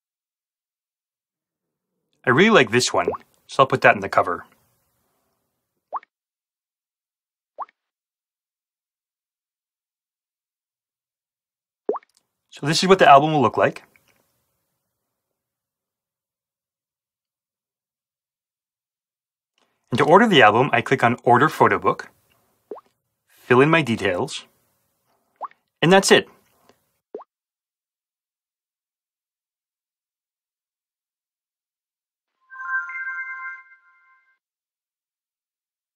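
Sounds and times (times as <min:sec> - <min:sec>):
electronic transition chime: 0:32.4 - 0:34.4.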